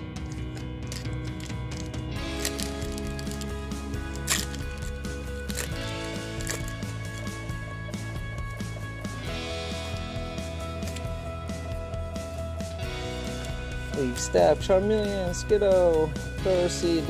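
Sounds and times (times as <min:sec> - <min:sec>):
foil wrapper crinkling and tearing: 0:00.0 - 0:07.6
background music: 0:00.0 - 0:17.0.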